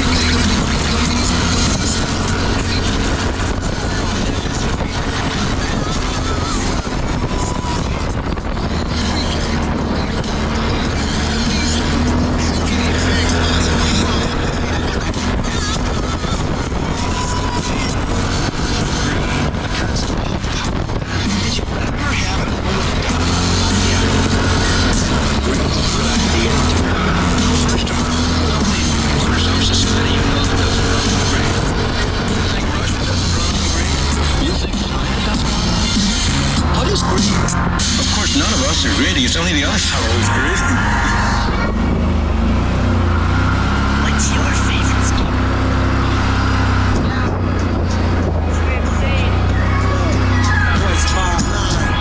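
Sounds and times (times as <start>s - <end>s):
ground noise: 0.0s - 52.0s
quad bike engine running: 0.0s - 52.0s
rap music from speaker: 0.0s - 52.0s
wind rushing: 39.8s - 44.0s.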